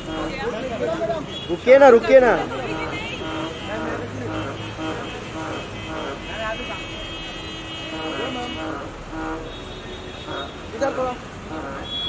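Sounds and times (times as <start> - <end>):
street traffic noise: 0.0 - 12.0
vehicle horn blasts: 0.0 - 12.0.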